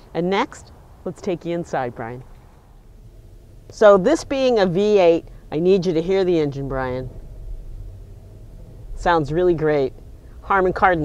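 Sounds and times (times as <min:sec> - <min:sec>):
car engine idling: 0:02.0 - 0:11.0.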